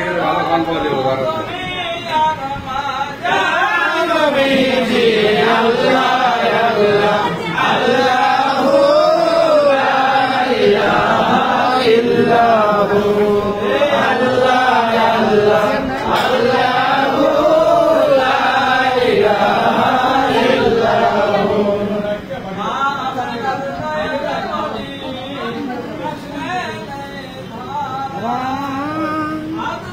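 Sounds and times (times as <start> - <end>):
voices chanting: 2.6 - 25.8.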